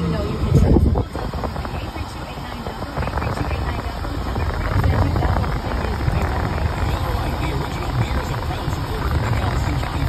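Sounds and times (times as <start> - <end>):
car engine rumble inside cabin: 0.0 - 10.0
radio talk from car speakers: 0.0 - 10.0.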